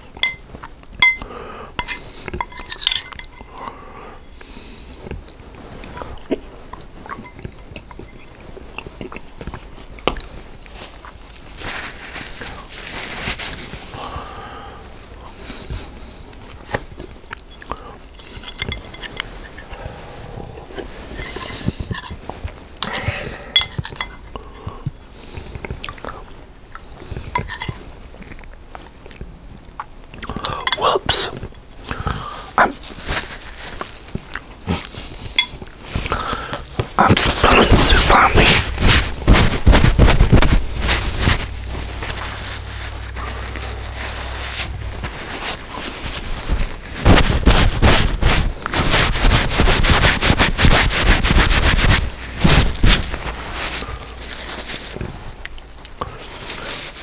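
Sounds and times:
chewing: 0:04.4 - 0:11.5, 0:16.2 - 0:33.0.

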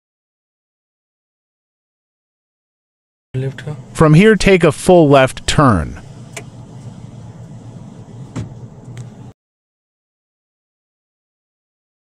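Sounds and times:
car engine humming: 0:03.4 - 0:09.3.

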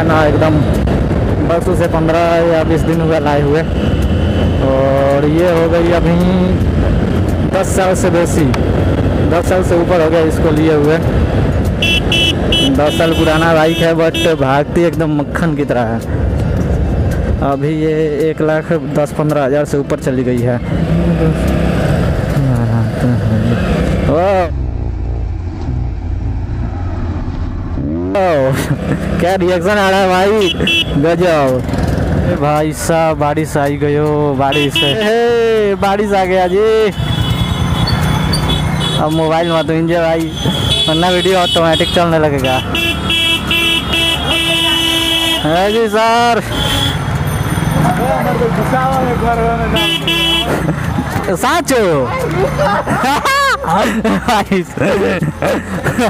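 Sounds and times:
motorcycle engine and road noise: 0:00.0 - 0:56.0
horn beeping: 0:11.8 - 0:14.4, 0:30.2 - 0:31.0, 0:34.5 - 0:35.2, 0:36.4 - 0:39.7, 0:49.7 - 0:50.6
motorcycle engine rumble: 0:20.4 - 0:35.6.

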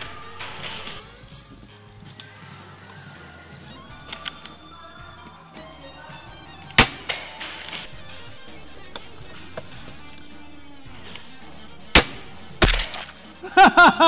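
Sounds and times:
background music: 0:00.0 - 0:14.0
airsoft rifle shots: 0:06.7 - 0:13.4.

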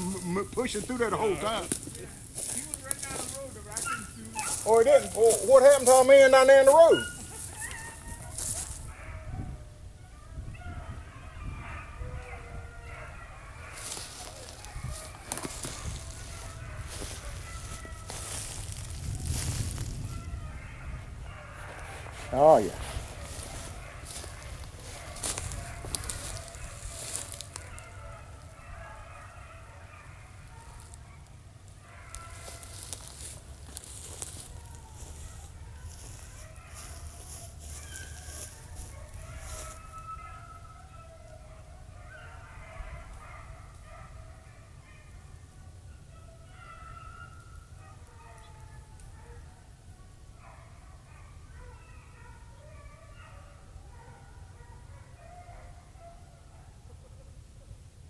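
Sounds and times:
rustling and crackling brush: 0:00.0 - 0:08.9, 0:13.7 - 0:20.2, 0:21.5 - 0:28.6, 0:30.2 - 0:40.0
dogs baying: 0:00.0 - 0:57.4.

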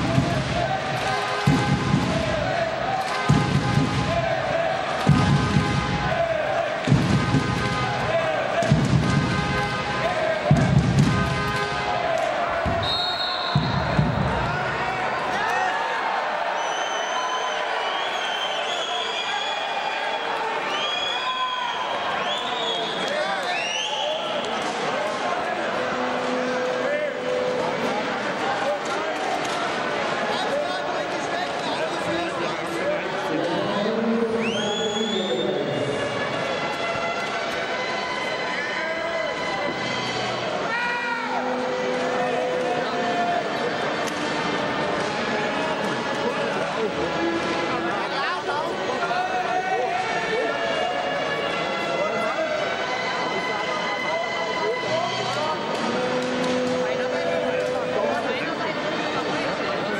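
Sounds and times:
deep drum beat: 0:00.0 - 0:11.5, 0:13.5 - 0:14.8
crowd voices echoing: 0:00.0 - 0:59.9
whistles: 0:12.8 - 0:14.0, 0:16.5 - 0:24.6, 0:34.4 - 0:35.6.

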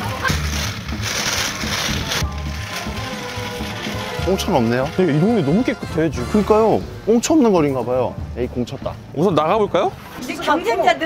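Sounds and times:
music with bass beat: 0:00.0 - 0:06.8.

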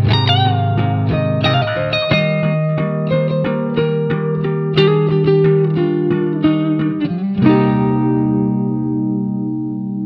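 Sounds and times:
electric guitar lead line: 0:00.0 - 0:10.0.

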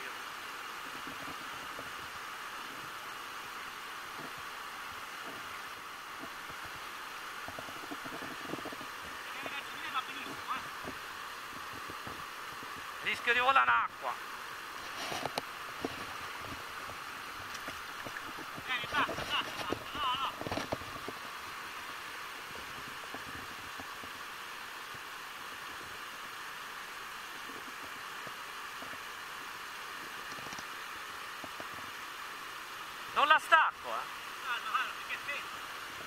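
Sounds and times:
river water rushing over rocks: 0:00.0 - 0:36.0.

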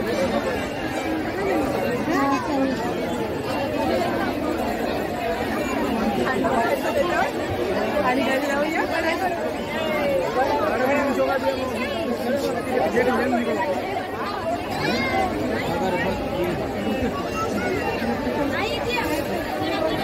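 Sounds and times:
crowd chattering: 0:00.0 - 0:20.0.

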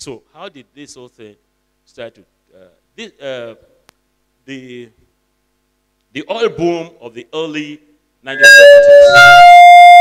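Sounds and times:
microphone feedback howl: 0:08.3 - 0:10.0.

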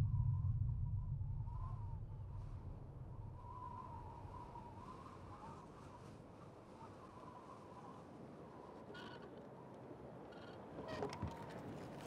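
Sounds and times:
deep low boom: 0:00.0 - 0:04.2.

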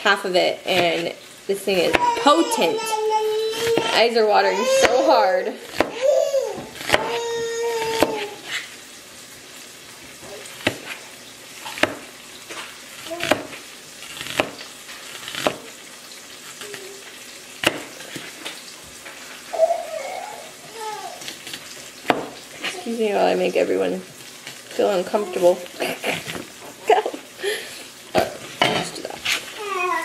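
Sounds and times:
knife chopping on plastic board: 0:05.7 - 0:08.6, 0:10.6 - 0:11.0, 0:11.7 - 0:12.1, 0:13.2 - 0:13.6, 0:14.2 - 0:15.7, 0:17.6 - 0:18.0, 0:21.5 - 0:22.4.

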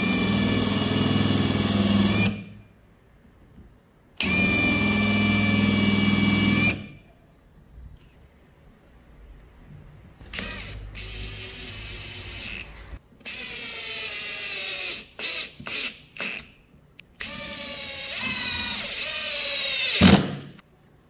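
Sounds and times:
power drill motor whining: 0:00.0 - 0:02.4, 0:04.2 - 0:06.9, 0:10.2 - 0:16.5, 0:17.2 - 0:20.2.

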